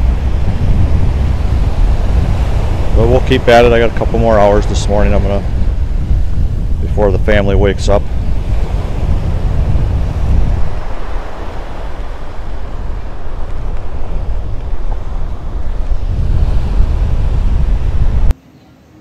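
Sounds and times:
water washing in shallows: 0:00.0 - 0:18.3
surf breaking: 0:00.0 - 0:18.4
wind buffeting microphone: 0:00.0 - 0:18.4.

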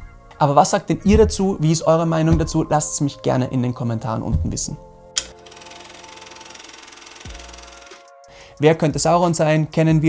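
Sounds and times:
held tones: 0:05.2 - 0:08.2
fast even rattling: 0:05.4 - 0:08.1.

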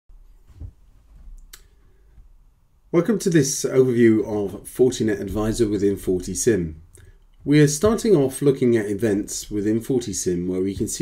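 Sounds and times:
low thump: 0:05.1 - 0:06.0.

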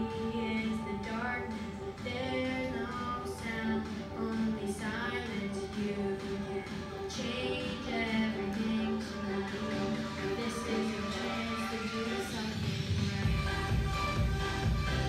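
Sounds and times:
musical accompaniment: 0:00.0 - 0:15.0.

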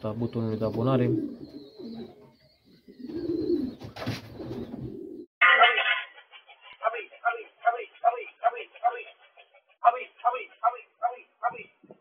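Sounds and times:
pigeons cooing: 0:00.1 - 0:05.3
person's voice: 0:05.4 - 0:12.0.

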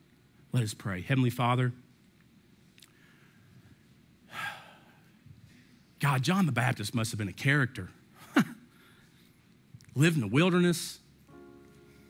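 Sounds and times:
man breathing: 0:02.8 - 0:05.9, 0:08.7 - 0:09.4.

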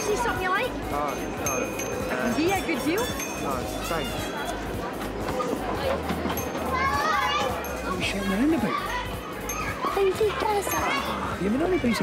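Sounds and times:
children calling out: 0:05.4 - 0:12.0.

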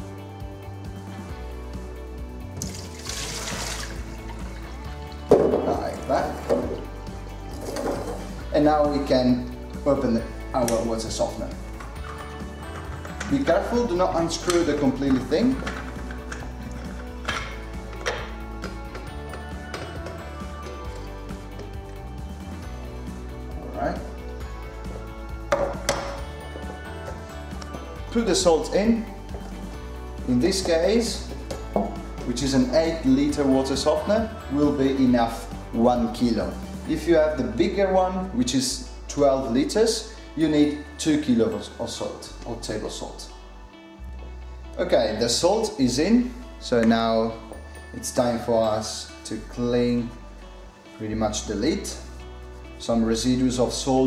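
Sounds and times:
background music: 0:00.0 - 0:54.0
water running and trickling: 0:02.6 - 0:05.3.

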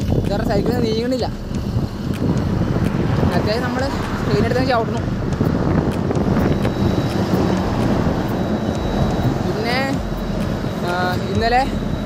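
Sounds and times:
lorry engine and tyres passing: 0:00.0 - 0:12.0
wind rumble on microphone: 0:00.0 - 0:12.0.

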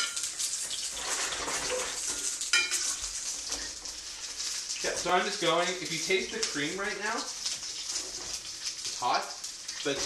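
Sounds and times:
spoon stirring saucepan: 0:00.0 - 0:05.2
fish sizzling in hot oil: 0:00.0 - 0:10.0.

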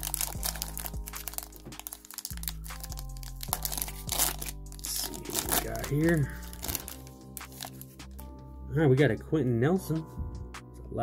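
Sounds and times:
foil wrapper crinkling: 0:00.0 - 0:08.0
background music: 0:00.0 - 0:11.0.

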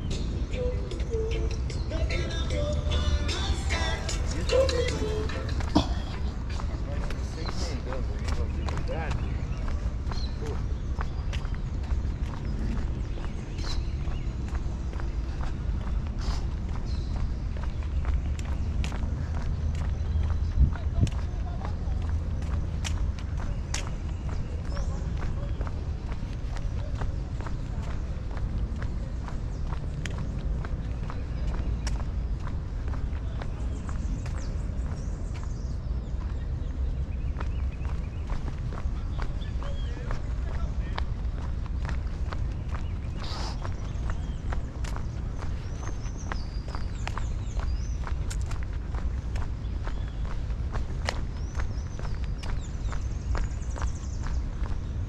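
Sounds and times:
footsteps on paved path: 0:00.0 - 0:55.0
steady low rumble: 0:00.0 - 0:55.0.

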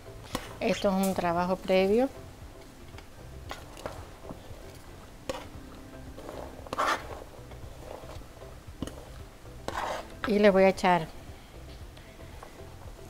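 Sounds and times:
spatula scraping cutting board: 0:05.3 - 0:10.4.

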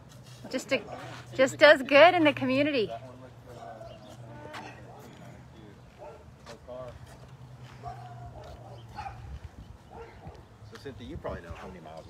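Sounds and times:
dog barking: 0:03.5 - 0:04.0, 0:06.0 - 0:06.3, 0:07.8 - 0:09.3, 0:09.9 - 0:10.4.

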